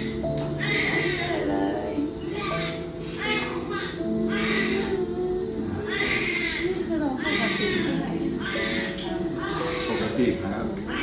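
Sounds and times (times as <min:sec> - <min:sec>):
newborn baby crying: 0:00.0 - 0:11.0.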